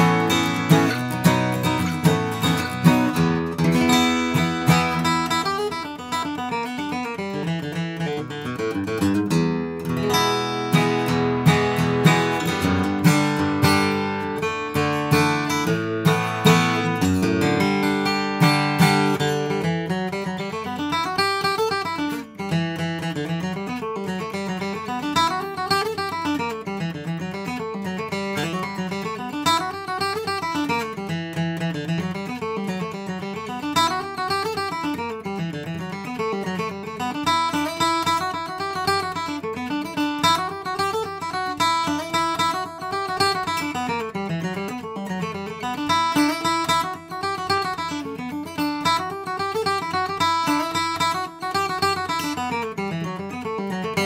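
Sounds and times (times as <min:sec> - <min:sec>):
acoustic guitar picked tune: 0:00.0 - 0:54.0.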